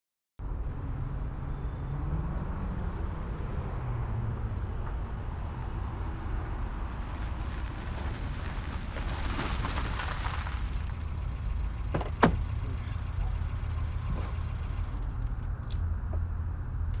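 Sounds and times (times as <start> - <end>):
car engine rumble: 0.4 - 17.0
tyre noise: 4.5 - 14.9
car door unlatching clicks: 11.9 - 12.4.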